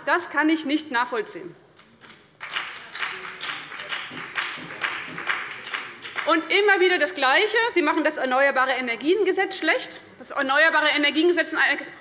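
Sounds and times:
hands clapping: 0:01.8 - 0:06.6.

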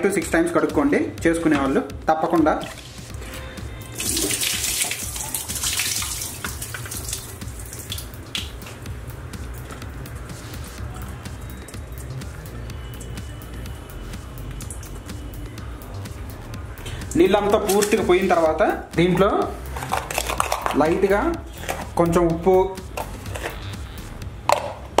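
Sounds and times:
background music with low beat: 0:00.0 - 0:25.0
water pouring and splashing: 0:02.4 - 0:03.3, 0:03.9 - 0:08.9, 0:17.0 - 0:18.2
water trickling and dripping: 0:02.5 - 0:03.1, 0:03.8 - 0:15.5.

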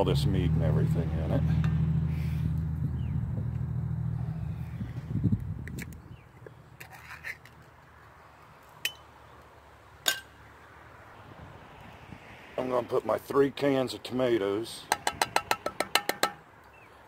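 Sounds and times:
low engine hum: 0:00.0 - 0:06.7.

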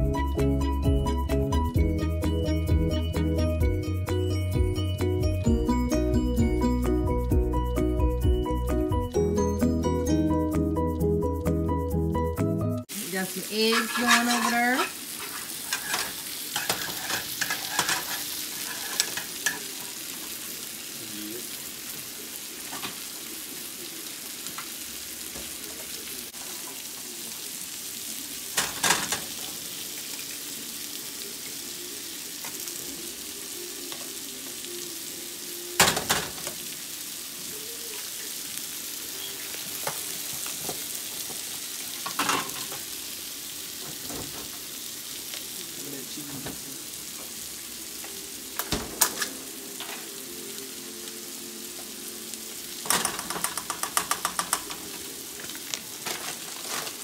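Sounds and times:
seafood sizzling in a frying pan: 0:12.8 - 0:57.0.

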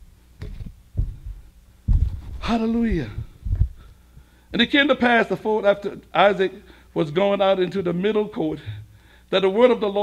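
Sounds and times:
microphone handling thumps: 0:00.4 - 0:04.3.

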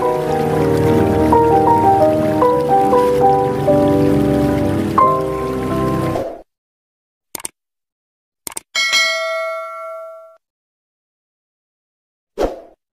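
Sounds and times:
mouse clicks: 0:07.4 - 0:07.6
bell ding: 0:08.8 - 0:10.4.

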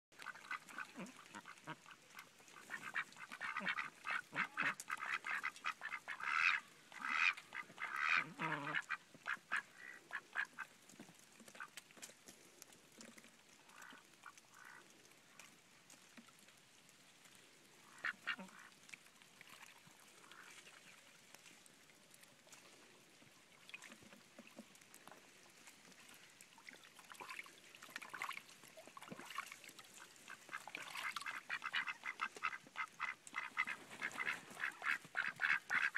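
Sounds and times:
ducks quacking: 0:00.2 - 0:10.7, 0:30.3 - 0:35.9.

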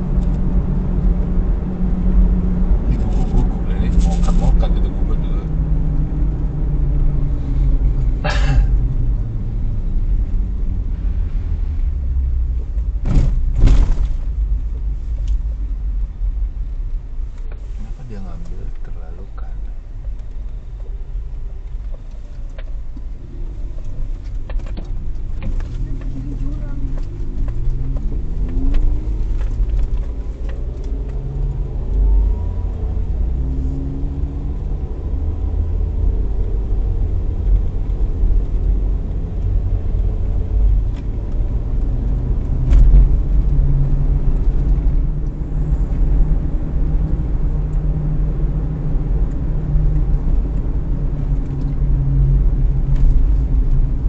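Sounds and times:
car engine and tyre rumble: 0:00.0 - 0:54.0
knocks from bumpy road: 0:12.7 - 0:14.7.

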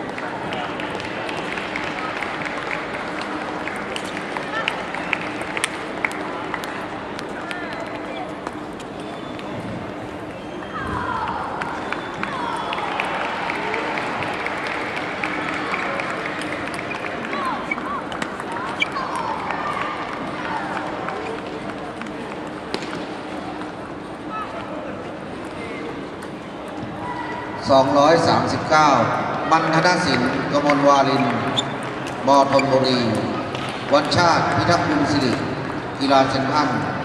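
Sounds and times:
many voices chattering: 0:00.0 - 0:37.0.

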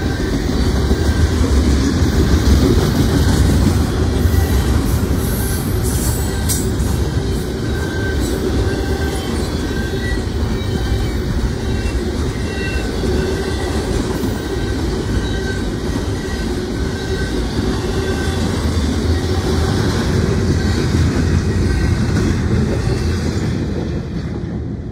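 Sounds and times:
steel wheels rumbling on rail: 0:00.0 - 0:24.9.

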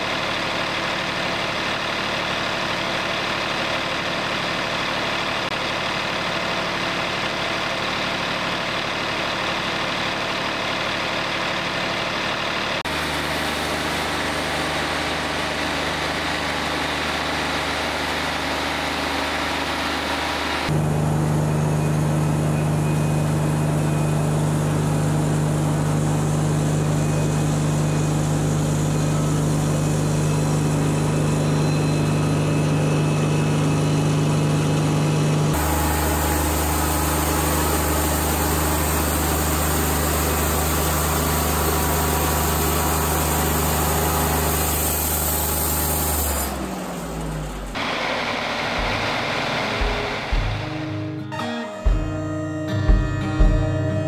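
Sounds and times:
band sawmill sawing log: 0:35.4 - 0:51.1.

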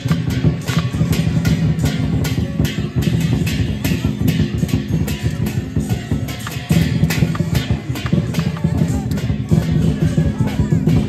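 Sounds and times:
hand cymbals clashing: 0:00.0 - 0:11.0
large drum beating: 0:00.0 - 0:11.0.

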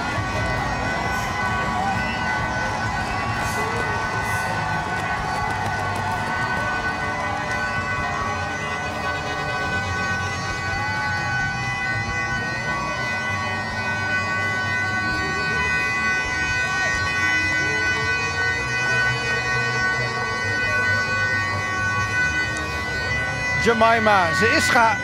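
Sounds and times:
crowd noise: 0:00.0 - 0:25.0
steady droning held pitches: 0:00.0 - 0:25.0.

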